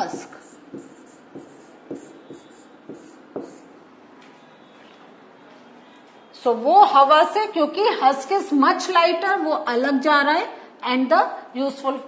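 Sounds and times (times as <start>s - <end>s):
pen tapping and scratching on screen: 0.0s - 3.7s.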